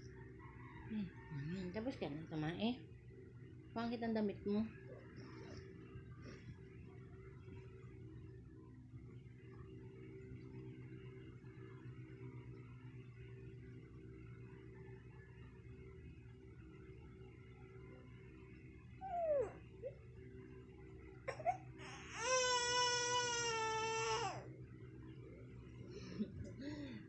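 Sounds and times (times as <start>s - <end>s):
faint low hum: 0.0s - 27.0s
baby whimpering: 19.0s - 19.6s, 21.3s - 24.4s
baby crying: 21.3s - 24.5s.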